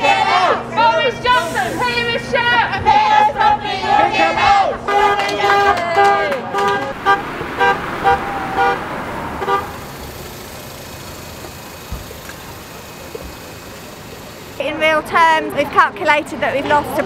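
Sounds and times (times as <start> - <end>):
street background noise: 0.0 - 17.0.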